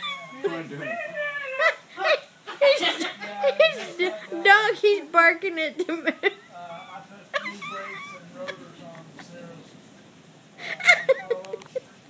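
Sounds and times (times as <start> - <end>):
people laughing: 0.0 - 4.5, 5.8 - 9.6, 10.6 - 12.0.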